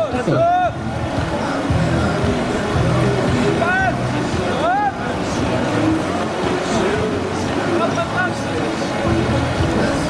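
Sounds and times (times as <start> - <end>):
whitewater rushing over weir: 0.0 - 10.0.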